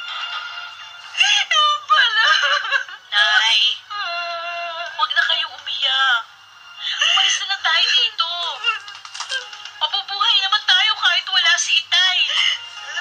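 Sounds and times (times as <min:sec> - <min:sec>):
music: 0:00.0 - 0:13.0.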